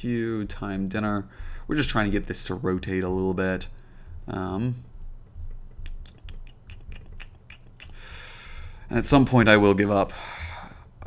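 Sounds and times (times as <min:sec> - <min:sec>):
soft breath: 0:01.3 - 0:01.7, 0:03.7 - 0:04.3, 0:07.9 - 0:08.9, 0:10.1 - 0:11.0.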